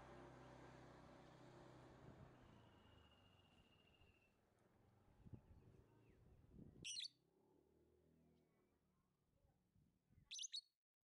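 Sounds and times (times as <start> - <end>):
bird chirp: 6.9 - 7.1, 10.3 - 10.7.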